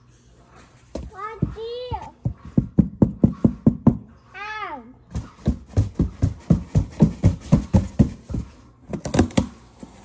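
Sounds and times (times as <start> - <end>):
hand tapping on cardboard: 5.1 - 9.5.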